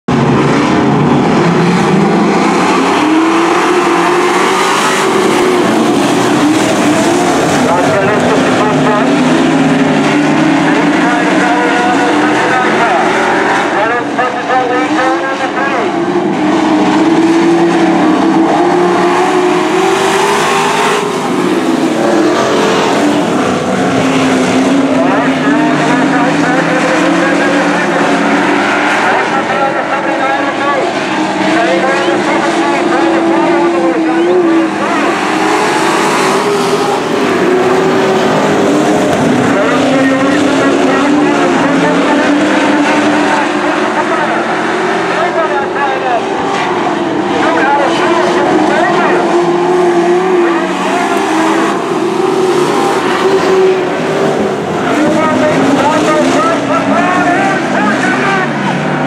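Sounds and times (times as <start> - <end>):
race truck engines: 0.0 - 59.0.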